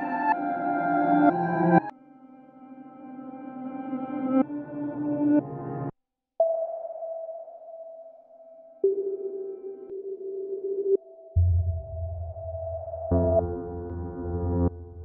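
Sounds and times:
held pure tone: 8.8s - 15.0s
low pulsing drone: 11.4s - 15.0s
synthesized chord: 11.4s - 15.0s.

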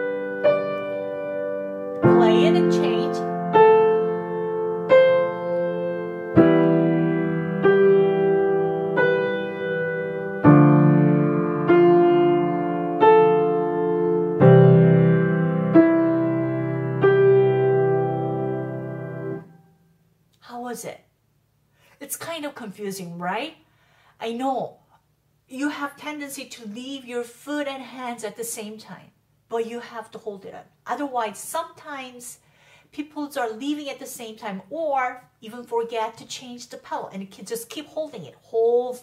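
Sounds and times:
slow piano chords: 0.0s - 19.8s.

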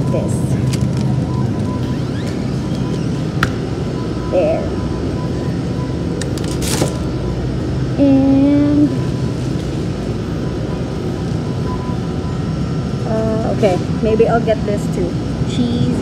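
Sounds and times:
refrigerated cases humming: 0.0s - 16.0s.

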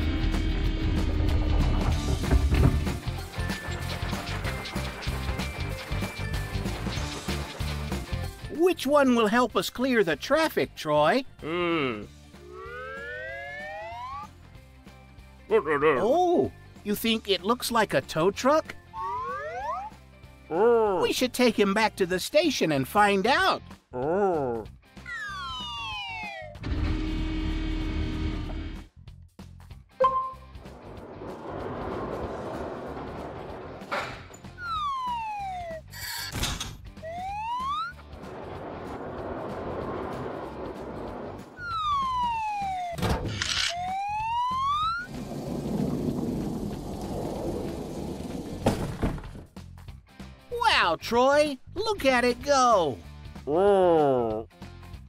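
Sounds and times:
background music: 0.0s - 45.1s, 48.3s - 55.0s
cartoon whistle glides: 12.5s - 14.3s, 25.1s - 26.6s, 34.6s - 35.8s, 37.0s - 38.0s, 41.6s - 43.0s, 43.7s - 45.1s
sharp thunks: 48.6s - 49.5s.

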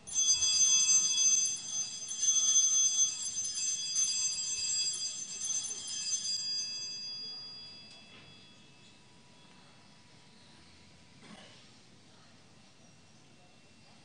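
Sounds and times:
small bells ringing: 0.0s - 10.5s.

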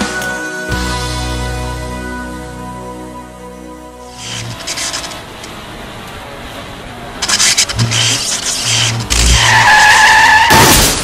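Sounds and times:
tyres squealing in a skid: 7.2s - 11.0s.

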